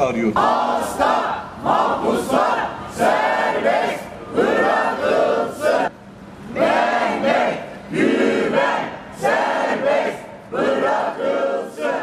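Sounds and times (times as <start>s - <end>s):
crowd chanting slogan: 0.2s - 5.9s, 6.5s - 12.0s.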